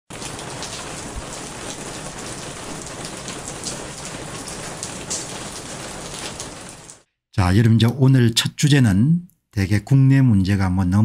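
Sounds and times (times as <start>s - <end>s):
raindrop taps: 0.1s - 7.0s
steady rain falling: 0.1s - 7.1s.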